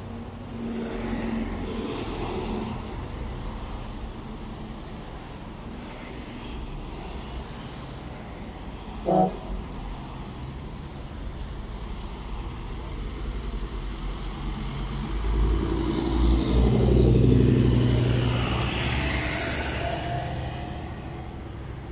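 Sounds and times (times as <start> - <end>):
traffic passing: 0.0 - 21.9
truck engine hum: 8.8 - 21.9.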